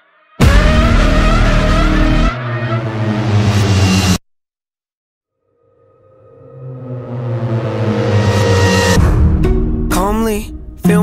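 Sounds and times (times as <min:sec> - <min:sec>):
heavy bass: 0:00.4 - 0:04.2.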